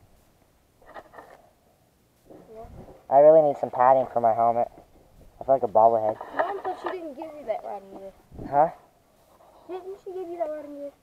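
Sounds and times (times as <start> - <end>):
faint clicks and rustles: 0.0 - 3.1, 4.6 - 8.3, 9.1 - 11.0.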